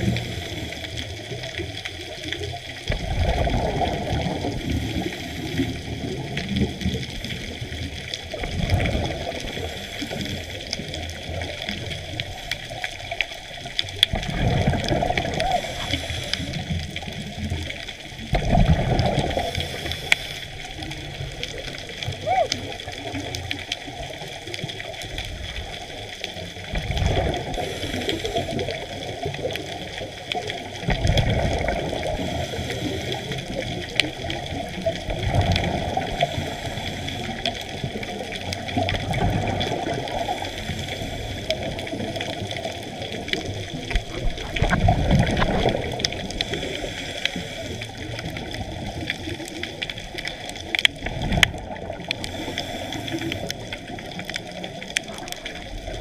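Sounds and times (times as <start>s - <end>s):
underwater hiss: 0.0s - 56.0s
regulator exhaust bubbles: 2.8s - 12.4s, 14.0s - 19.8s, 41.4s - 55.3s.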